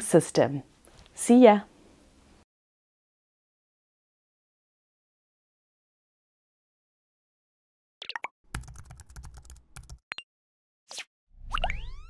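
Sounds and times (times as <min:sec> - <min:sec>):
keyboard typing clicks: 0:08.5 - 0:10.2.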